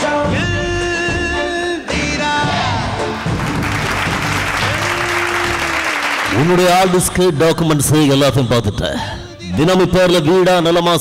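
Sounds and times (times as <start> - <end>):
background music: 0.0 - 11.0
audience applauding: 2.8 - 7.2.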